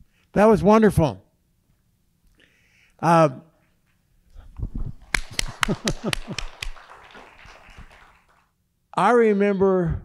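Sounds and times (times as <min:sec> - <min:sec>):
audience applause: 0:05.0 - 0:08.5.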